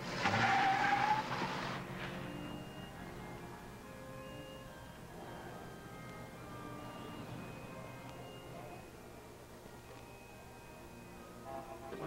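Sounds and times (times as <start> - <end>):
car engine accelerating: 0.0 - 9.0
tyre squeal: 0.2 - 1.7.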